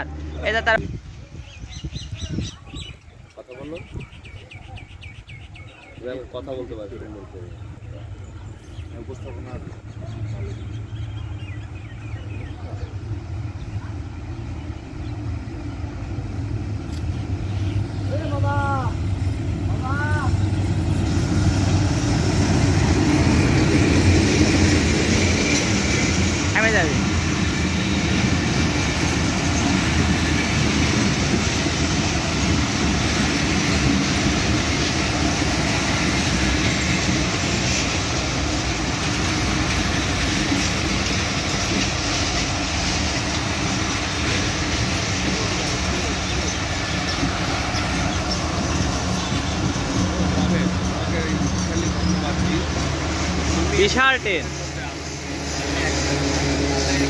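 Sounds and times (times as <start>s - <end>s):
locomotive engine rumble: 0.0s - 57.0s
train coaches clattering on rails: 0.0s - 57.0s.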